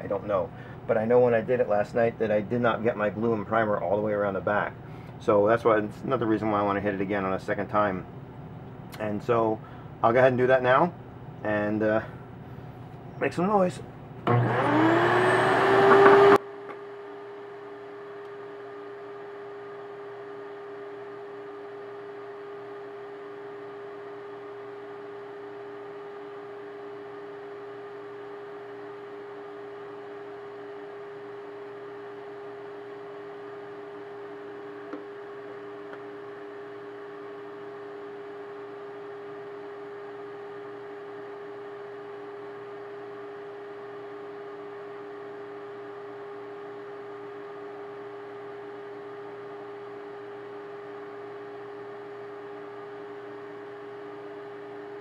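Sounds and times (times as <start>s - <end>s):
vacuum motor humming: 14.2s - 16.9s, 33.5s - 40.2s, 47.9s - 55.0s.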